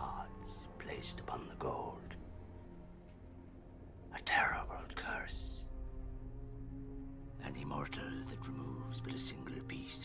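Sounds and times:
man whispering: 0.0s - 2.2s, 4.1s - 5.7s, 7.4s - 10.0s
soft background music: 0.0s - 10.0s.

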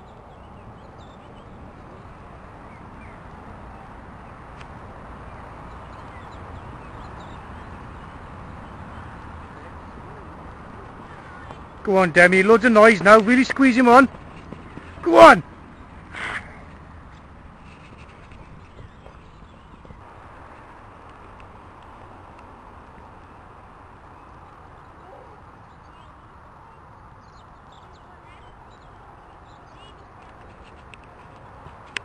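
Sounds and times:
steady outdoor hiss: 0.0s - 32.0s
hoofbeats on grass: 11.1s - 15.4s, 16.7s - 21.4s
horse hoofbeats on grass: 11.5s - 15.0s.

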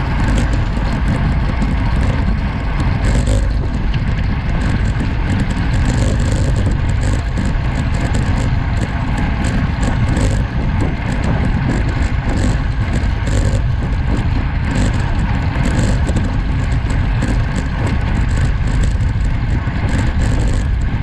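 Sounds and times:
bike tyres humming on road: 0.0s - 21.0s
wind rushing over microphone: 0.0s - 21.0s.

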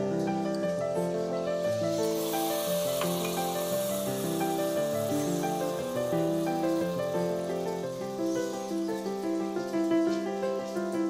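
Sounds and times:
instrumental music held notes: 0.0s - 11.0s.

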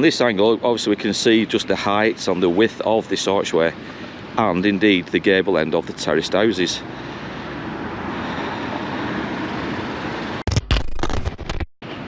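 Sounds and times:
traffic hiss: 0.0s - 10.4s.

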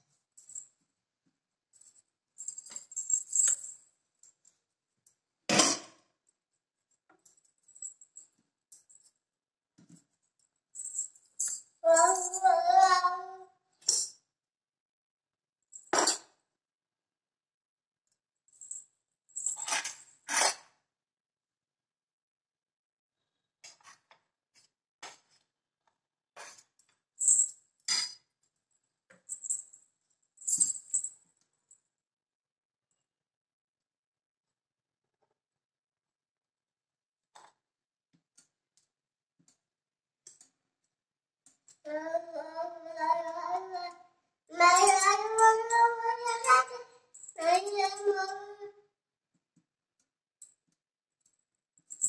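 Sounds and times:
small child singing: 11.8s - 13.5s, 41.9s - 48.8s
small metal pieces jingling: 44.6s - 48.1s.

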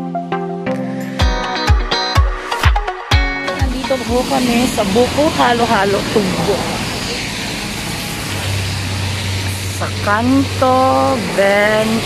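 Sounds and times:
noisy background: 1.2s - 12.0s
low steady engine hum: 3.5s - 12.0s.

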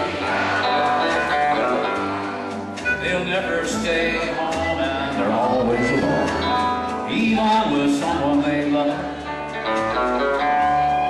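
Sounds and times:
acoustic guitar picking: 0.0s - 11.0s
country band playing: 0.0s - 11.0s.

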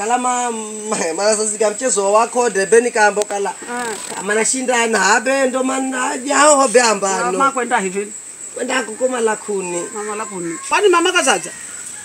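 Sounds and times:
man speaking: 0.0s - 11.6s
high-pitched insect trill: 0.0s - 12.0s.

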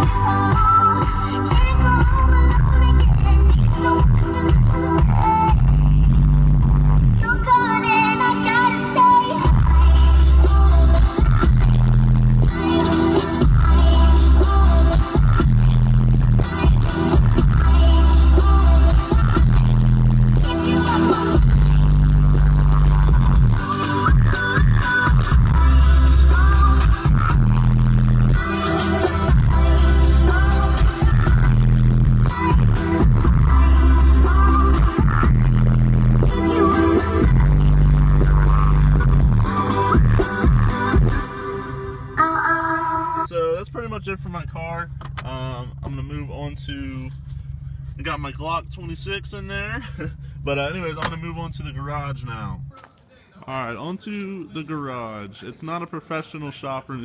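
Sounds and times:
deep subwoofer bass: 0.0s - 7.6s, 9.4s - 52.8s
song on car stereo: 0.0s - 56.4s.

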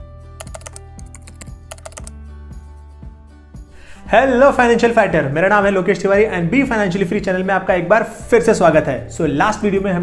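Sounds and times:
music with soft thumping beat: 0.0s - 10.0s
keyboard typing clicks: 0.4s - 2.1s.

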